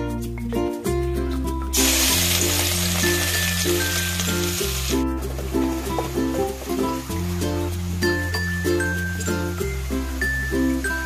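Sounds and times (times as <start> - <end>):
background music with bass line: 0.0 - 11.0
onion sizzling in hot oil: 1.7 - 11.0.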